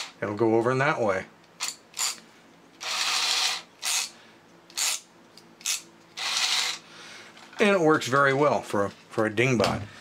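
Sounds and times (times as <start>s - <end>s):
toy robot motor whirring: 1.6s - 2.2s, 2.8s - 4.1s, 4.7s - 6.8s.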